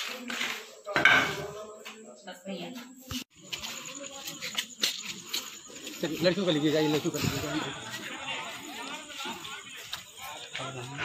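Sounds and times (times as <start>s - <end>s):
background voices: 3.1s - 11.0s.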